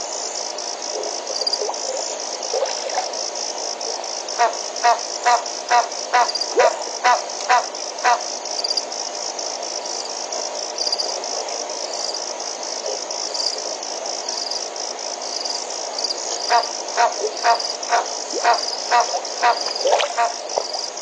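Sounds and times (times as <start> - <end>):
crickets trilling: 0.0 - 21.0.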